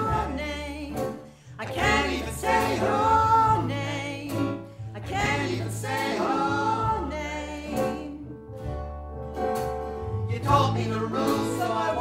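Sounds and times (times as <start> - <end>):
woman singing: 0.0 - 8.3
bass notes: 0.0 - 12.0.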